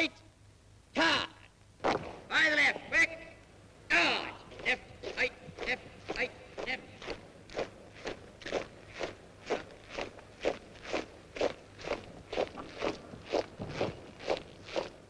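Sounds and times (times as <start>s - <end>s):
boots marching on pavement: 4.5s - 15.0s.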